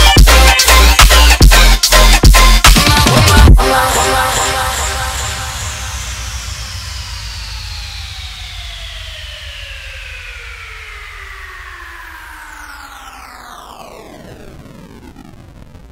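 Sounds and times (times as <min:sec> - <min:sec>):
synthesizer sweep gliding down: 0:03.1 - 0:15.9
low rumble: 0:03.4 - 0:13.7.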